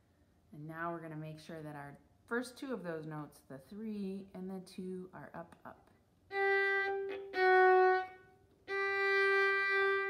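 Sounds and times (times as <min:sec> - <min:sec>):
violin bowed notes: 0:06.3 - 0:10.0.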